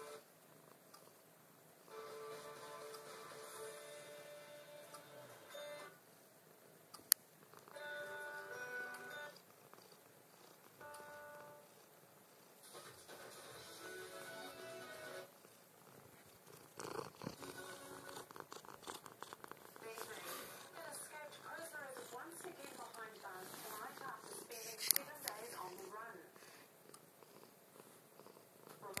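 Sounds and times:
cat purring: 7.3s - 29.0s.

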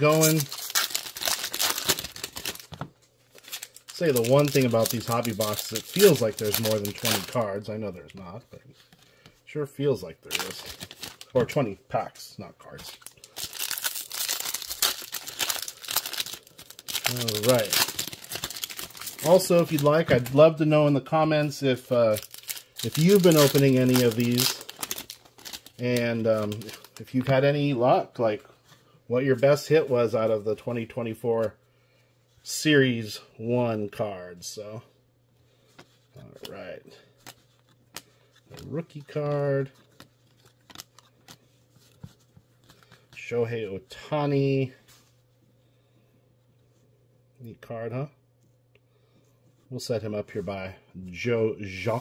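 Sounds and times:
foil wrapper crinkling: 0.0s - 7.6s, 10.3s - 11.6s, 12.6s - 20.5s, 21.8s - 27.4s
handling trading cards: 0.0s - 9.4s, 10.2s - 11.8s, 12.4s - 21.0s, 21.8s - 27.5s, 35.6s - 43.2s.

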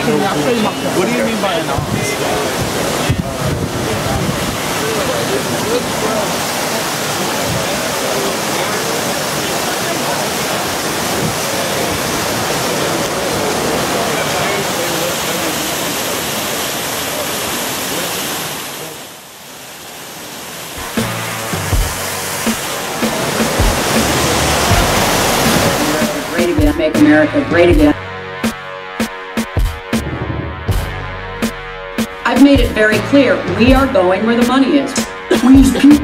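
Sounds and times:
loud steady rushing noise: 0.0s - 36.0s
music with bass beat: 20.8s - 36.0s
indistinct voices: 22.8s - 28.0s.

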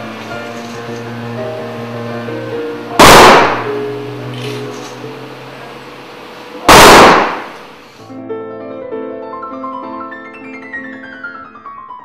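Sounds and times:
piano notes: 0.0s - 5.6s, 8.1s - 12.0s
slow soft music: 0.0s - 6.6s, 8.0s - 12.0s
rifle volleys with echo: 3.0s - 3.8s, 6.7s - 7.7s.

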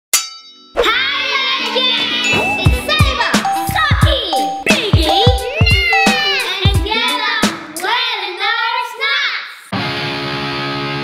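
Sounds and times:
ringing clang: 0.1s - 0.8s
busy intro jingle: 1.0s - 7.1s.

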